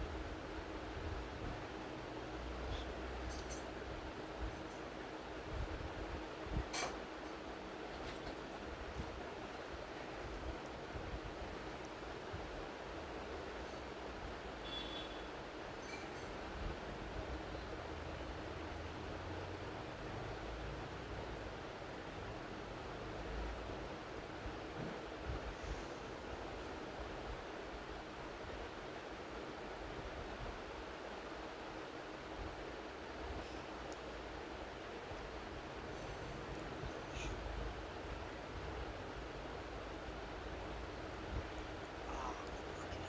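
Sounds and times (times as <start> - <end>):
microphone hiss and hum: 0.0 - 43.0.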